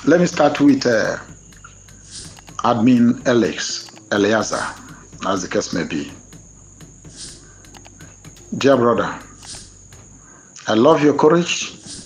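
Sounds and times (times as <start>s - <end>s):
crickets chirping: 0.0s - 12.0s
faint clicks: 0.5s - 10.4s.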